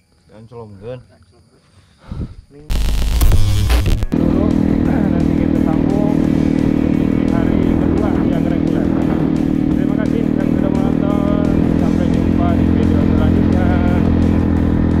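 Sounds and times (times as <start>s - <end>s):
music: 2.7s - 15.0s
motorcycle engine running: 4.0s - 15.0s.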